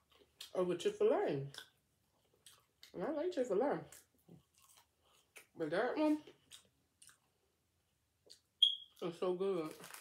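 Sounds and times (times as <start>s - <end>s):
woman speaking: 2.9s - 4.0s, 5.6s - 6.3s, 9.0s - 9.9s.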